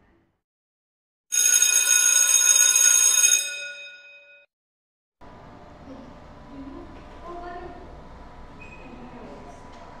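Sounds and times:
bell ringing loudly: 0:01.3 - 0:04.5.

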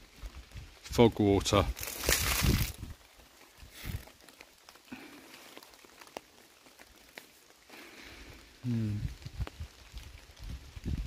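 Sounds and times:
water drips on tarp: 0:00.0 - 0:11.0.

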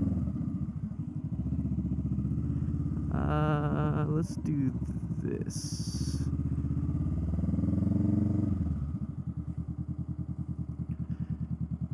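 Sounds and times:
motorcycle engine revving: 0:00.0 - 0:11.9.

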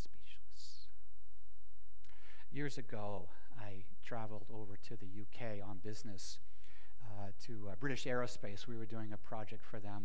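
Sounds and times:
man speaking: 0:00.0 - 0:01.0, 0:02.4 - 0:10.0
steady low hum: 0:00.0 - 0:10.0.

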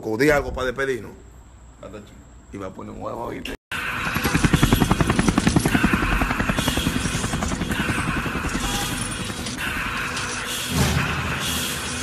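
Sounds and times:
music: 0:03.7 - 0:12.0
helicopter rotor chopping: 0:03.8 - 0:10.4.

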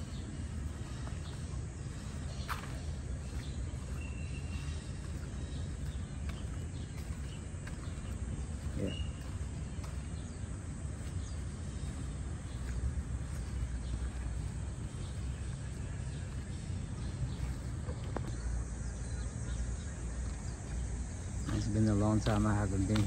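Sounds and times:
low uneven rumble: 0:00.0 - 0:23.0.

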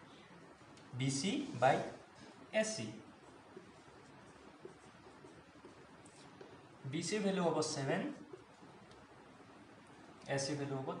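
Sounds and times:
person speaking: 0:00.8 - 0:08.7, 0:10.2 - 0:11.0
marker writing on whiteboard: 0:01.4 - 0:09.2.

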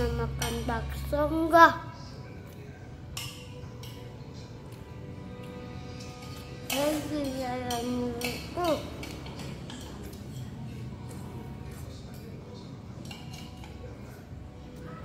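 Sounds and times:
child's sing-song voice: 0:00.0 - 0:02.2, 0:06.6 - 0:09.2
spoon clinking against bowl: 0:05.4 - 0:10.6, 0:12.9 - 0:14.1.

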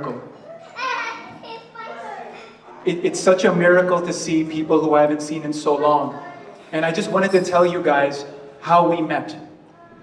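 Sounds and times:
child speaking: 0:00.6 - 0:02.8, 0:06.1 - 0:06.6, 0:09.7 - 0:10.0.

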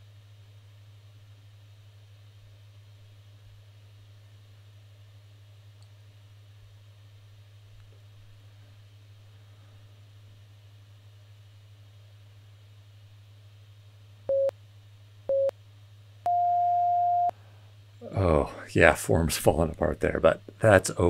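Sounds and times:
steady low hum: 0:00.0 - 0:21.0
interval timer beeps: 0:16.3 - 0:17.3.

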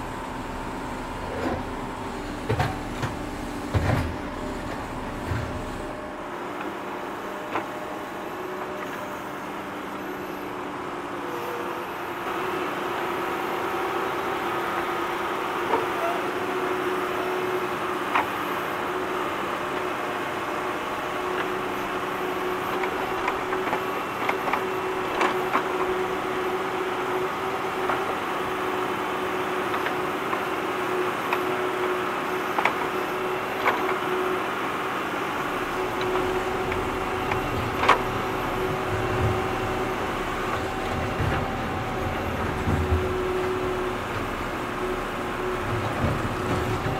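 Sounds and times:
tractor engine under load: 0:00.0 - 0:10.0, 0:11.2 - 0:46.9.

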